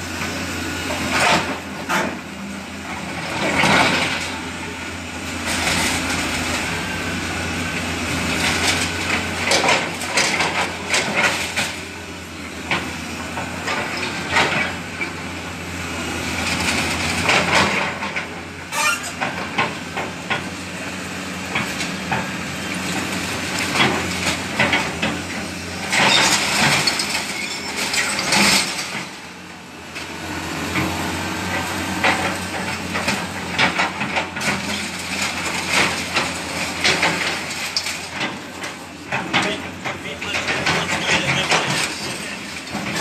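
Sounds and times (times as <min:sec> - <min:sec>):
excavator diesel engine running: 0:00.0 - 0:43.0.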